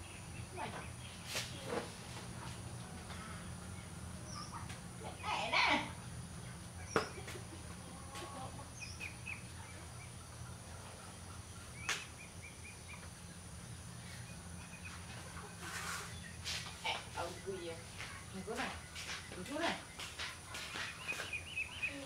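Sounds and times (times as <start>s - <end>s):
bird calls and chirps: 2.4s - 22.0s.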